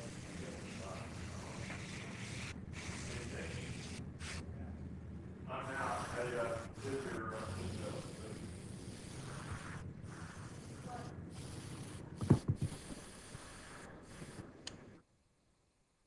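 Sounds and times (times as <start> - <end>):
airbrush hissing: 0.0 - 4.5, 5.6 - 15.0.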